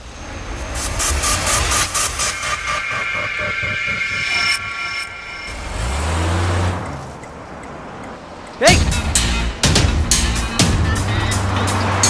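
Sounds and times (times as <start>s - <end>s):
noisy background: 0.0s - 12.0s
car engine running: 0.8s - 12.0s.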